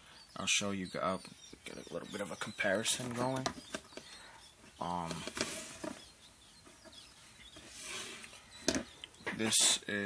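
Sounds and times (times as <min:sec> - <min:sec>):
rustling handling noise: 0:02.8 - 0:06.0.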